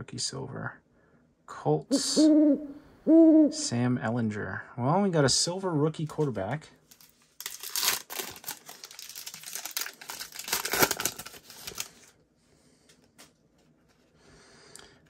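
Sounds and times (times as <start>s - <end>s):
foil wrapper crinkling and tearing: 6.9s - 12.2s.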